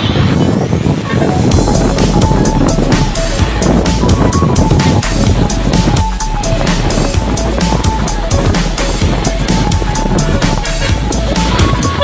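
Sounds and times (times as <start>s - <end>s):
background music with steady beat: 1.3s - 12.0s.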